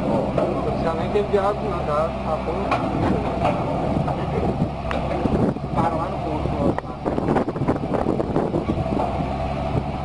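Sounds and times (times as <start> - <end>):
faint voices: 0.0 - 9.3
truck engine humming: 0.0 - 10.0.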